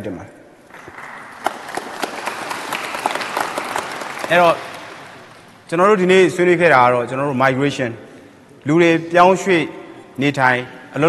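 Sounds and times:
audience applauding: 0.7 - 5.6.

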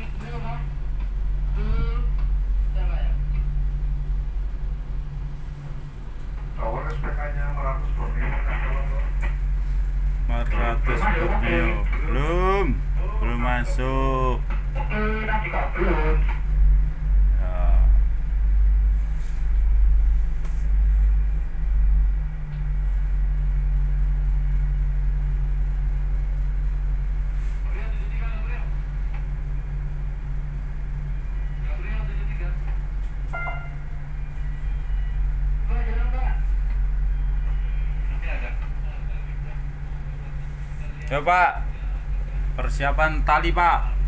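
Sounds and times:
tugboat engine droning: 0.0 - 44.0.

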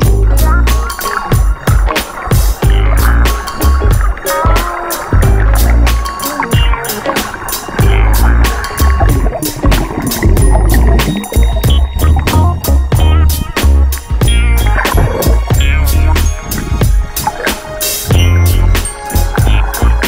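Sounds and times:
music with drum beat and heavy bass: 0.0 - 20.0.

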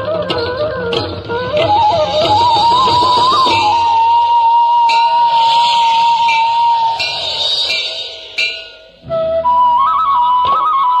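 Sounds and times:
flute holding long note: 0.0 - 11.0.

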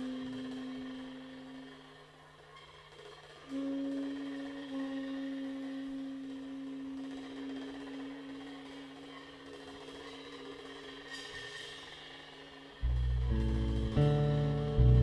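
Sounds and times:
long held jazz note: 0.0 - 2.4, 3.4 - 9.5, 12.8 - 15.0
soft cymbal shimmer: 0.0 - 14.8
loud low bass notes: 12.8 - 15.0.

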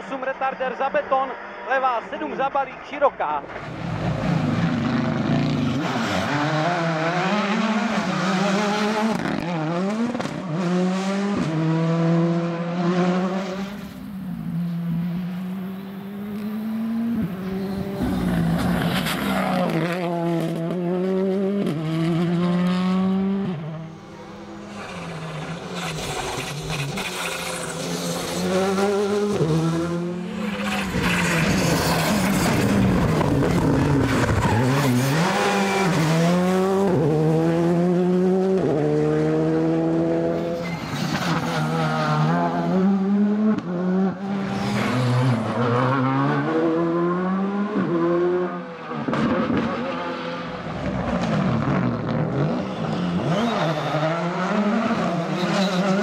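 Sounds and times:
rally cars driving past: 3.5 - 56.0
engines revving hard: 3.7 - 56.0.

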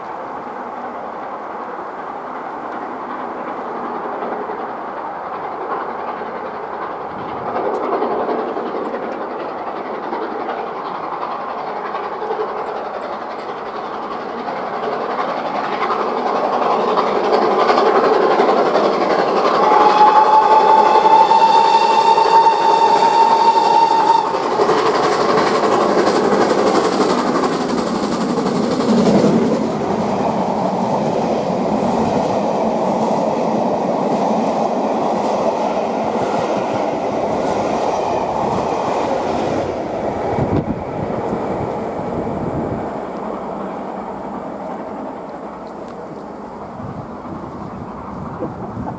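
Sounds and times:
steam locomotive working hard: 0.0 - 48.9
wheels clacking over rail joints: 0.0 - 48.9
steam whistle blast: 19.6 - 24.4.

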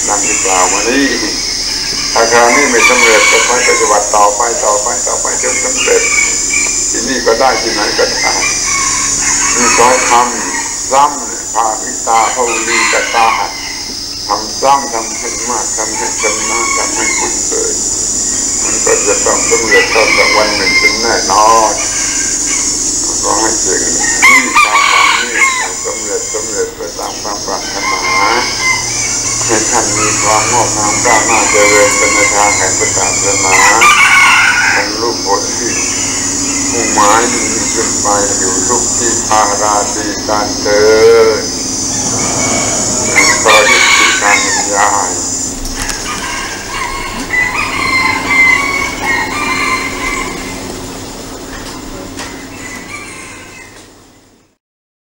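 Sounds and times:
rooster crowing: 0.0 - 54.2
high-pitched drone: 0.0 - 54.6.

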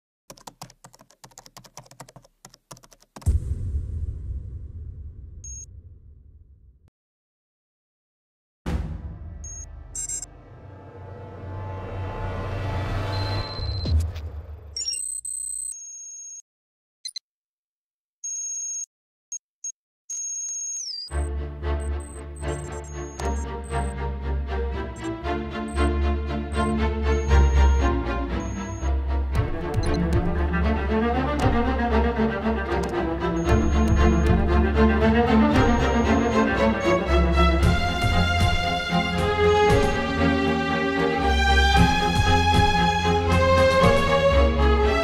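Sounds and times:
keyboard typing: 0.3 - 3.3, 22.0 - 23.9, 28.4 - 30.4, 31.3 - 31.7, 32.7 - 34.5
deep rumbling boom: 3.3 - 6.8, 8.7 - 14.8
electronic beeps: 5.4 - 5.7, 9.4 - 10.3, 13.0 - 14.0, 14.8 - 15.8, 20.1 - 21.2, 21.8 - 23.9, 25.0 - 29.0, 33.4 - 34.5, 35.6 - 36.6
theme music with deep bass: 8.7 - 14.8, 21.1 - 45.0.

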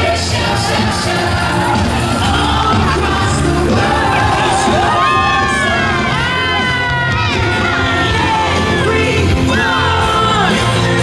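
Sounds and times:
crowd cheering and shouting: 0.0 - 11.0
loud parade music: 0.0 - 11.0.

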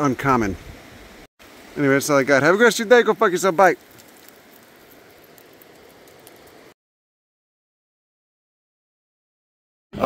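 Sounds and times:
outdoor background hiss: 0.0 - 6.8
small ticks: 3.8 - 6.6.

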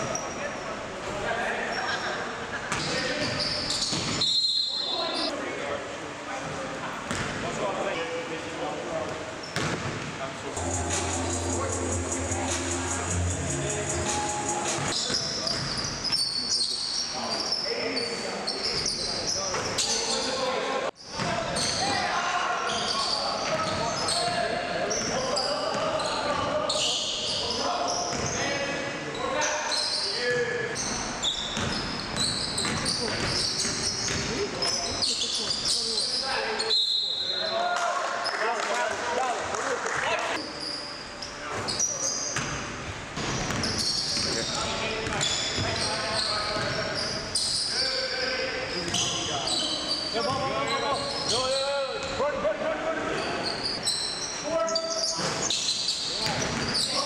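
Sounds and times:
sneakers squeaking on wooden court: 2.7 - 5.3, 9.4 - 10.1, 14.2 - 20.3, 22.6 - 37.0, 40.4 - 47.7, 48.8 - 52.2, 53.2 - 57.0
basketball bouncing: 9.6 - 10.0
players calling out: 10.6 - 15.7.

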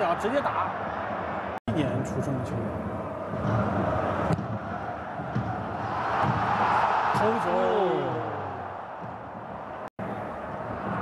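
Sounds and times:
stadium crowd roaring: 0.0 - 1.6, 2.8 - 11.0.

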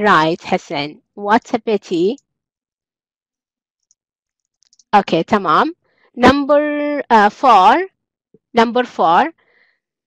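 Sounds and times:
woman speaking: 0.0 - 2.2, 5.0 - 7.9, 8.6 - 9.3.

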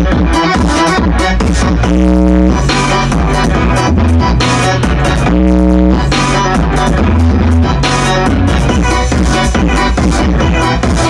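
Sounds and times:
deep bassline: 0.0 - 11.0
electronic dance music: 0.0 - 11.0.

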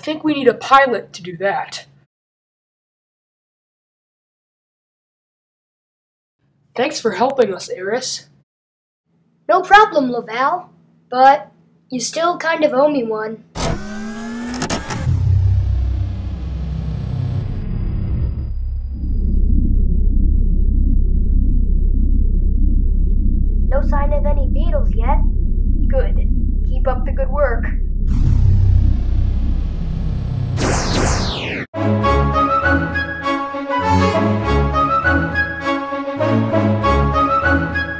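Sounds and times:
jet engine rumble: 15.4 - 31.6.

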